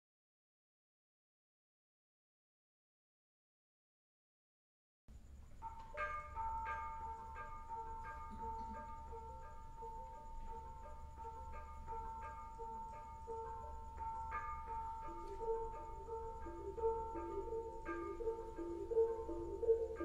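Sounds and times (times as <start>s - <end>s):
gamelan metallophones played softly: 12.5s - 20.0s.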